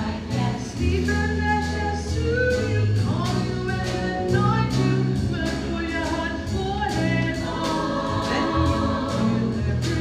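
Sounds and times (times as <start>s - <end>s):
voices singing in chorus: 7.4s - 10.0s.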